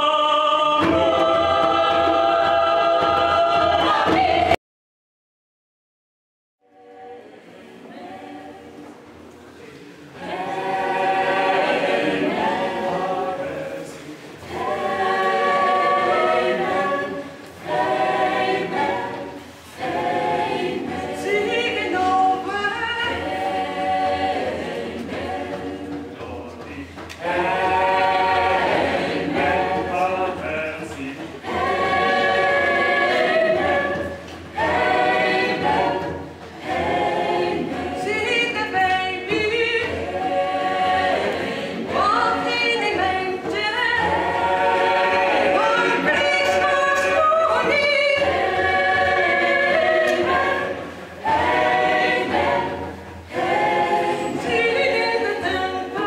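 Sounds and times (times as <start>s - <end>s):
choir singing a cappella: 0.0s - 4.6s, 6.6s - 56.0s.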